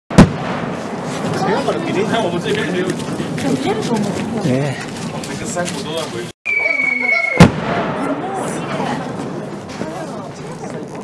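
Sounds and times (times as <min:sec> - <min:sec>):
spectators' voices: 0:01.0 - 0:11.0.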